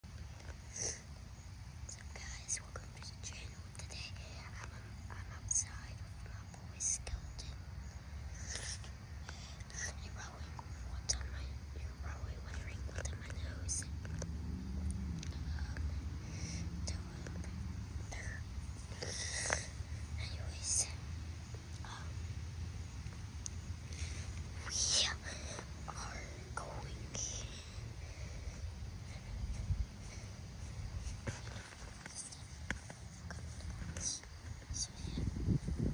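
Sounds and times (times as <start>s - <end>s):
steady low rumble: 0.0s - 35.9s
boy whispering: 0.6s - 1.1s, 1.9s - 7.6s, 8.2s - 14.4s, 15.0s - 22.3s, 23.8s - 35.7s.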